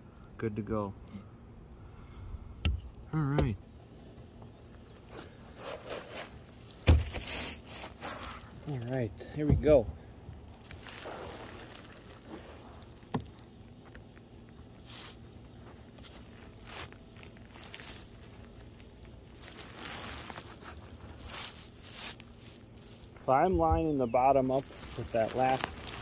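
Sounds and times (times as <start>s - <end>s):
roofing roll scuffing on roof: 5.0s - 8.6s.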